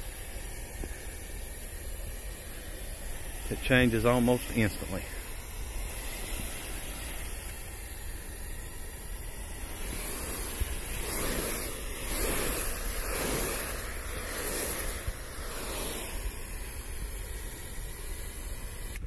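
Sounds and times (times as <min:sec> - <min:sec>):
spray hissing on metal roof: 0:00.0 - 0:19.0.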